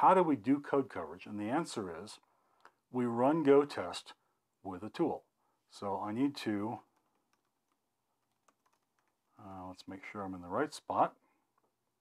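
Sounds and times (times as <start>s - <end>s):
computer keyboard keystrokes: 6.9s - 9.2s.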